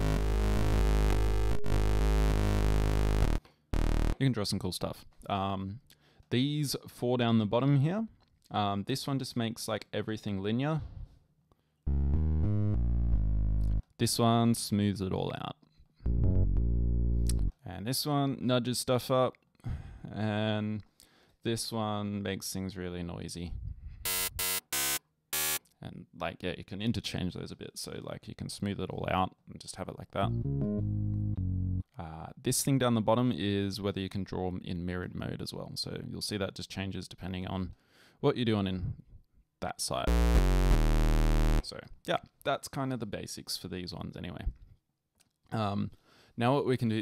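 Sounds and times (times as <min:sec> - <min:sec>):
low synthesizer note: 0:00.0 - 0:04.2, 0:11.9 - 0:13.9, 0:16.1 - 0:17.5, 0:40.1 - 0:41.6.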